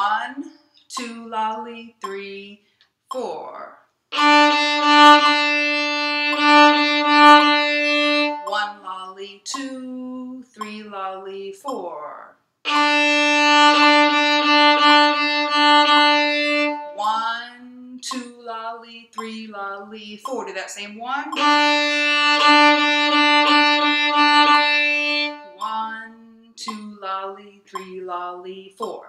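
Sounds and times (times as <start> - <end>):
woman's voice: 0.0 - 3.8, 8.4 - 12.4, 17.0 - 21.4, 25.6 - 29.0
violin repeating a note: 4.1 - 9.7, 12.7 - 17.4, 18.0 - 18.4, 20.2 - 27.0.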